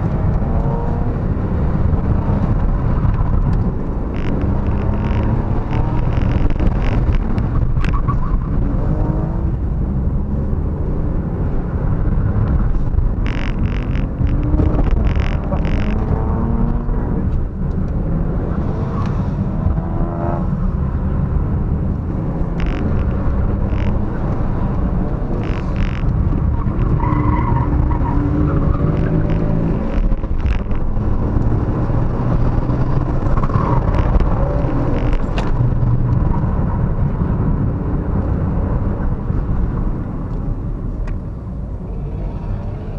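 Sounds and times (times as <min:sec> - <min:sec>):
car engine revving: 0:00.0 - 0:40.6
road and tyre rumble: 0:00.0 - 0:42.9.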